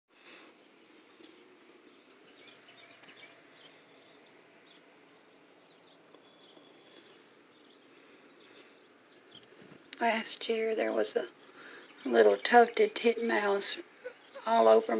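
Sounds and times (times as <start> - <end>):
small birds chirping: 0.1 - 14.9
background hiss: 0.2 - 14.9.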